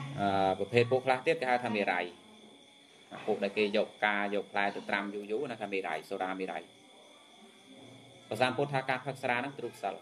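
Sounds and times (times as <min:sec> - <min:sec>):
faint high-pitched tone: 0:00.0 - 0:10.0
man giving a sermon: 0:00.2 - 0:02.1.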